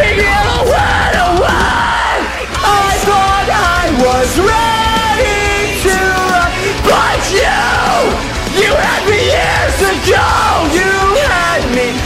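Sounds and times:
man screaming vocals: 0.0 - 12.0
metalcore backing track: 0.0 - 12.0.

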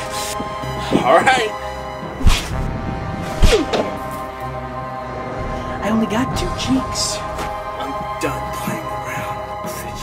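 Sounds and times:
background music: 0.0 - 10.0
hard slaps to the face: 3.4 - 4.0.

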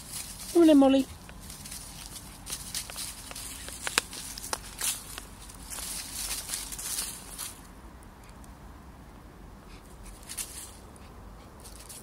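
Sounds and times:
dogs scuffling in play: 0.0 - 7.6
dry leaves rustling and crackling: 0.0 - 7.7, 10.0 - 10.8, 11.6 - 12.0.

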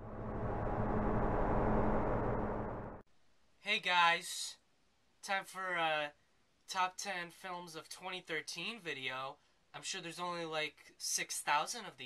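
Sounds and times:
rushing rumbling logo sound effect: 0.0 - 3.0.

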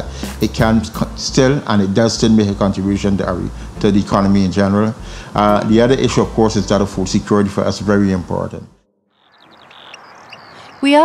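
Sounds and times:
high chirps from small animals: 9.2 - 11.0.

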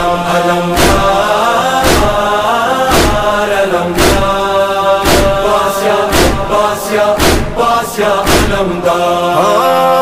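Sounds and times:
men singing mourning song: 0.0 - 10.0
heavy beat: 0.8 - 8.9.

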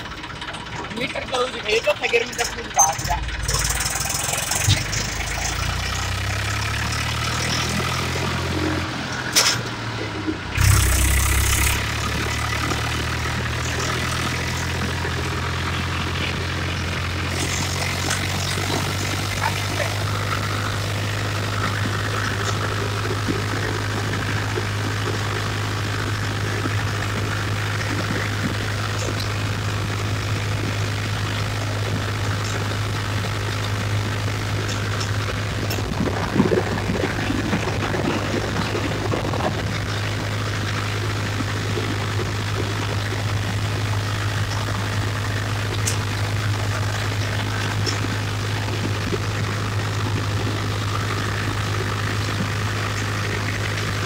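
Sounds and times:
tractor diesel engine droning: 0.0 - 54.0.

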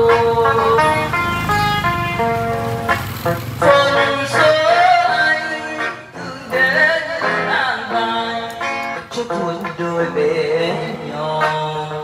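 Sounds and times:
electric guitar bolero melody: 0.0 - 12.0.

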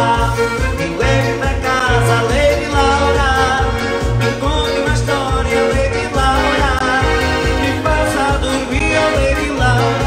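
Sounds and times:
accordion music: 0.0 - 10.0.

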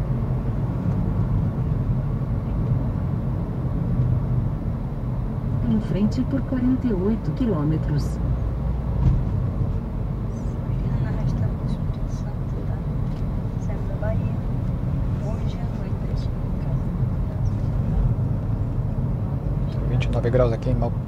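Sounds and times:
road and engine rumble in car: 0.0 - 21.0.

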